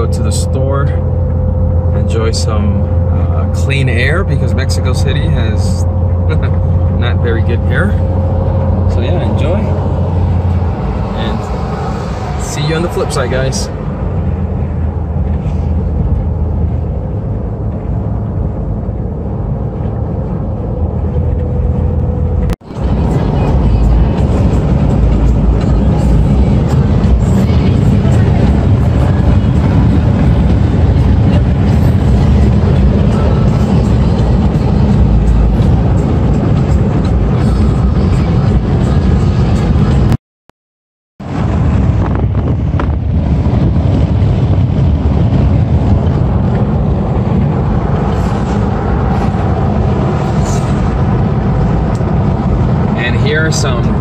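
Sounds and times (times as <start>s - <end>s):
car road and engine rumble: 0.0s - 40.2s, 41.2s - 54.0s.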